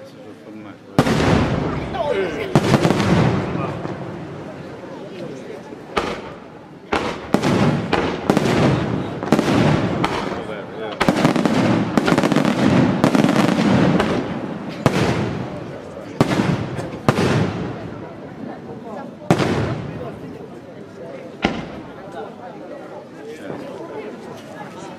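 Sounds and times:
fireworks crackling: 1.0 - 18.2, 19.3 - 20.4.

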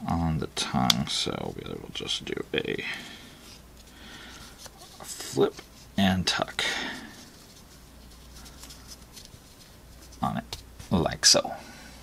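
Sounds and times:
nylon strap rustling: 2.9 - 11.4.

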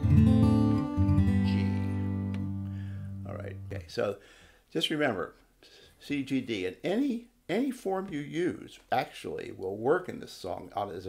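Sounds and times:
acoustic guitar strummed: 0.0 - 3.8.

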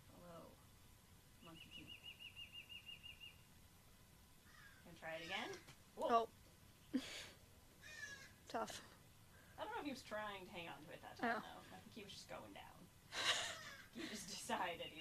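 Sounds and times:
marmoset trilling: 1.4 - 3.4, 7.8 - 8.4.

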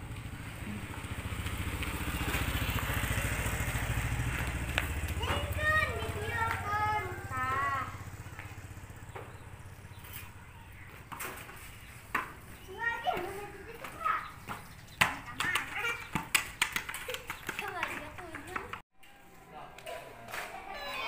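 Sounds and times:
children shouting: 5.0 - 8.4, 19.0 - 21.0.

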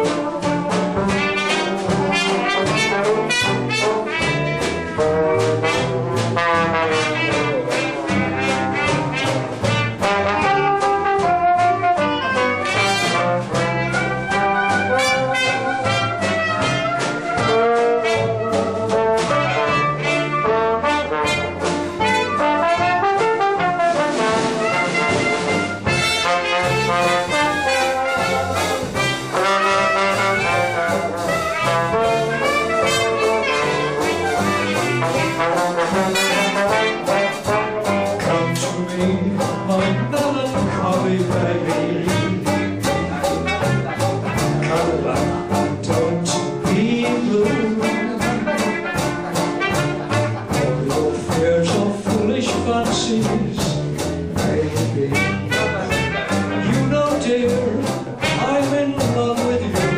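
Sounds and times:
traditional jazz band playing: 0.0 - 59.9.

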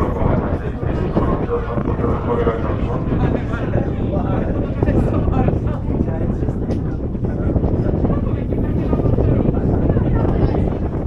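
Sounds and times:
ferry engine rumble: 0.0 - 11.0
wind buffeting microphone: 0.0 - 11.0.

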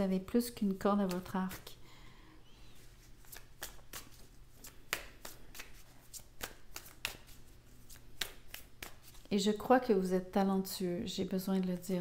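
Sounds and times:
cards being shuffled: 1.0 - 1.7, 2.8 - 9.3.

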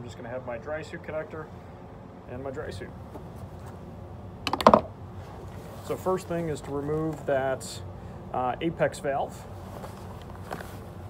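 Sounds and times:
drysuit fittings clicking and knocking: 4.4 - 4.9.

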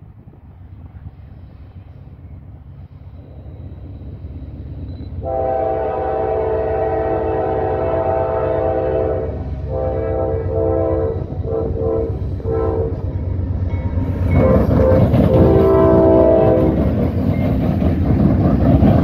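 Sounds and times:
diesel locomotive rumble: 0.0 - 19.0
locomotive air horn blasts: 5.2 - 13.1, 14.3 - 16.8
train wheel rattle: 10.5 - 19.0.

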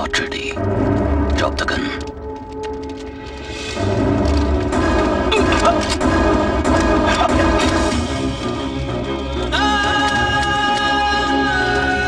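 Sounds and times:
low rumble: 0.5 - 9.6
low drone: 0.5 - 10.5
sharp hits: 0.6 - 8.6.

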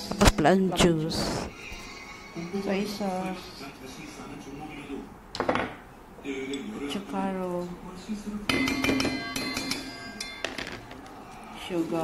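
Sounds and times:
spoon tapping metal bowl: 8.5 - 10.3
metal bowl ringing: 8.5 - 10.6.

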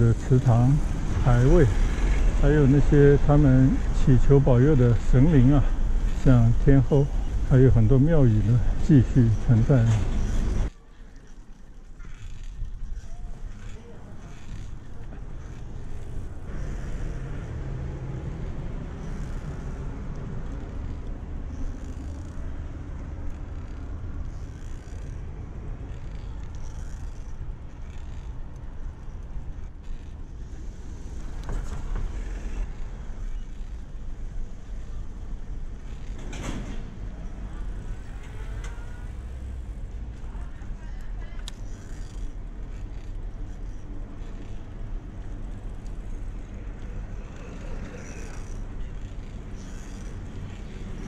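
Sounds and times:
bicycle road noise on concrete: 0.0 - 51.0.

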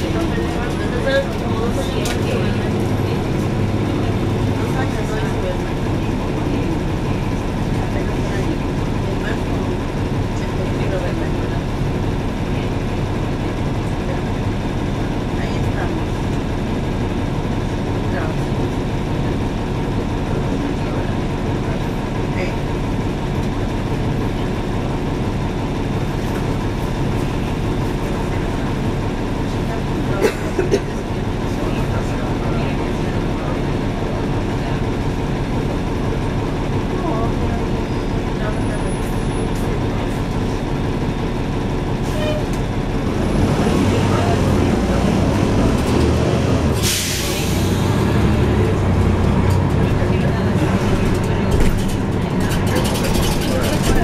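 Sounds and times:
bus diesel engine running: 0.0 - 54.0
air brake hiss: 46.8 - 47.9.

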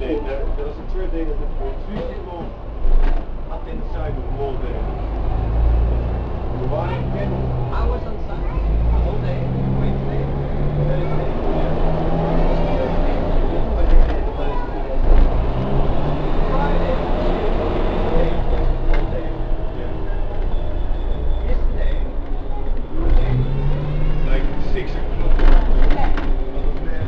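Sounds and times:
bus diesel engine humming: 0.0 - 27.0
road and cabin noise: 0.0 - 27.0.

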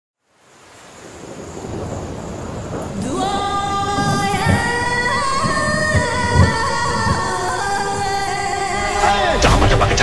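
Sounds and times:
rain hissing: 0.2 - 10.0
low rumble of thunder: 1.0 - 8.9.

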